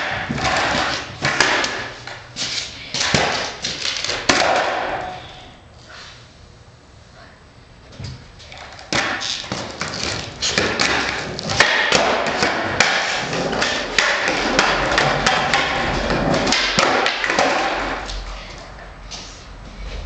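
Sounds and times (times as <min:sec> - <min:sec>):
skateboard clacks and thuds: 0:00.0 - 0:01.9, 0:03.0 - 0:05.1, 0:08.5 - 0:18.2
skateboard wheels rolling on concrete: 0:00.0 - 0:04.9, 0:08.4 - 0:20.0.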